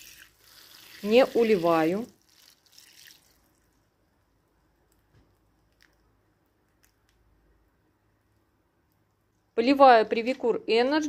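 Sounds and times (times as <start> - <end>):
water sprinkling onto soil: 0.0 - 3.5
faint water drips: 0.0 - 4.2.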